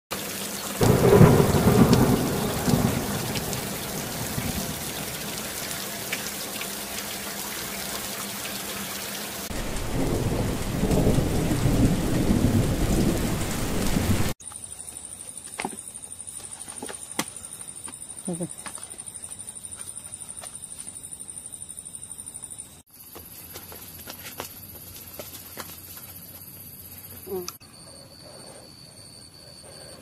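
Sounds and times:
heavy rain falling: 0:00.2 - 0:14.4
thunder rumbling: 0:00.8 - 0:05.8, 0:09.5 - 0:14.4.

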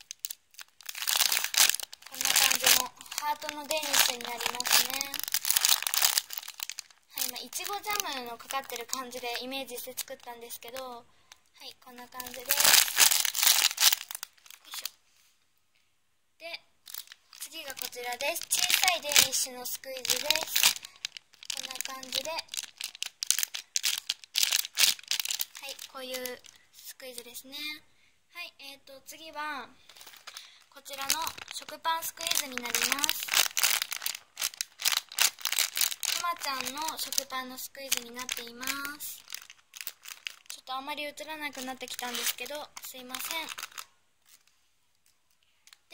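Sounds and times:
plastic bag crinkling: 0:00.0 - 0:15.0, 0:16.8 - 0:27.2, 0:29.8 - 0:45.9.

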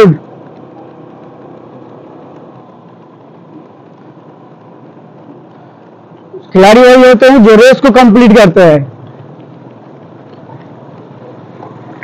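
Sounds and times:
road and air noise: 0:00.0 - 0:12.0
vehicle engine hum: 0:00.0 - 0:12.0.

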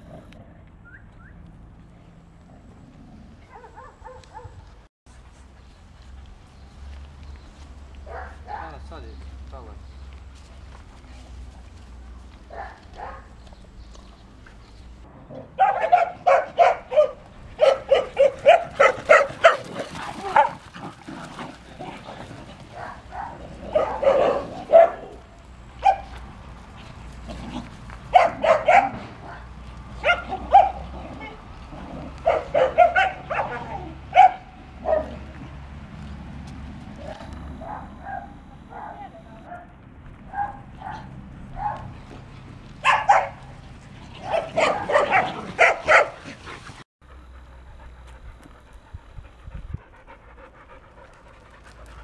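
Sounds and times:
dogs barking sharply: 0:03.4 - 0:04.6, 0:08.0 - 0:08.8, 0:12.5 - 0:13.4, 0:15.3 - 0:21.6, 0:22.6 - 0:26.4, 0:27.0 - 0:35.6, 0:36.9 - 0:42.2, 0:42.8 - 0:46.5.

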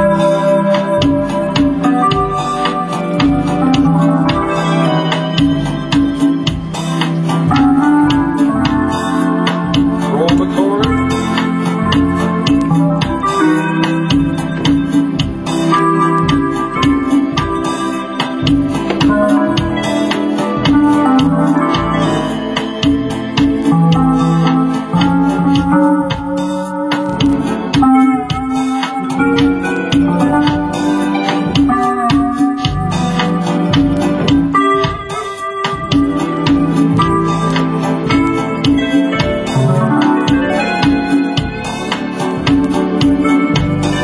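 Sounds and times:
electronic organ playing chords: 0:00.0 - 0:44.0.

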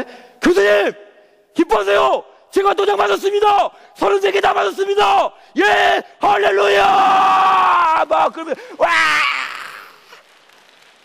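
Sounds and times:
man shouting: 0:01.6 - 0:09.7.

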